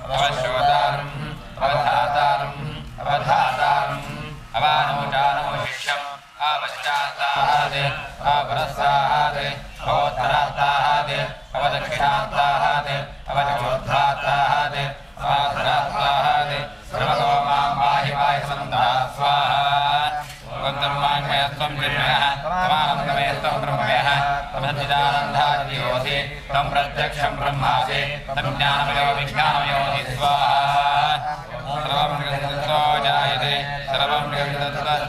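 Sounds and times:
men chanting: 0.0s - 35.0s.

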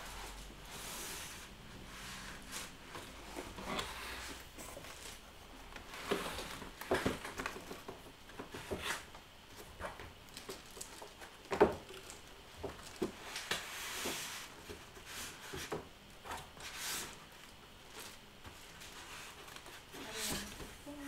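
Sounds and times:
cardboard box rustling and scraping: 18.1s - 20.6s.

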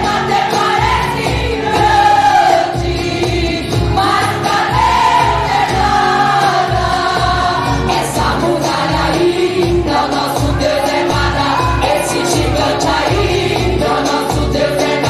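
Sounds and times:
band with drum beat: 0.0s - 15.0s
choir singing gospel: 0.0s - 15.0s.

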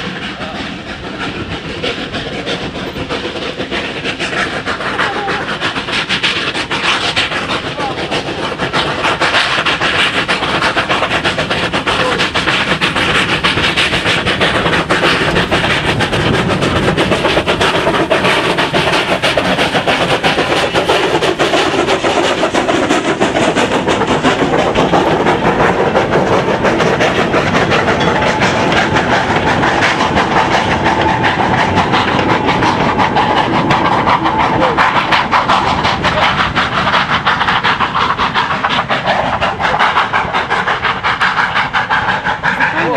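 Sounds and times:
steam locomotive exhaust beats: 0.0s - 42.9s.

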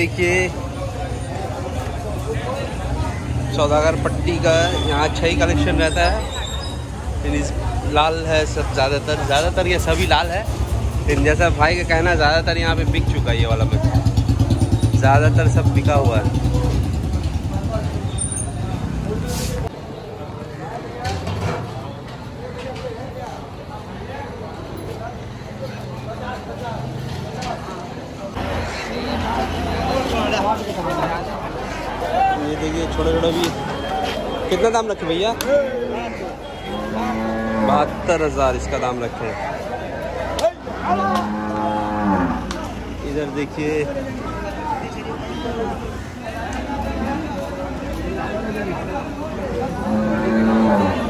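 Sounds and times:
crowd chatter: 0.0s - 51.0s
cow mooing: 36.7s - 38.2s, 40.8s - 42.5s, 49.7s - 51.0s.

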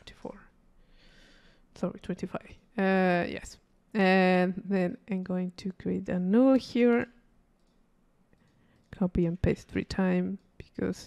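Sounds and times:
computer mouse clicks: 7.6s - 9.1s, 10.4s - 10.9s.

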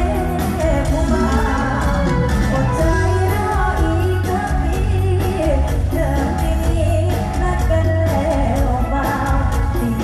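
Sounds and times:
amplified band with heavy bass: 0.0s - 10.0s
woman singing into microphone: 0.0s - 10.0s.

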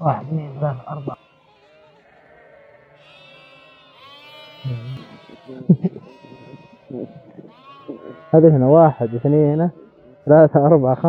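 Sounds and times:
puppies whimpering and squealing: 0.0s - 11.0s
short low vocal sounds: 4.6s - 8.4s.

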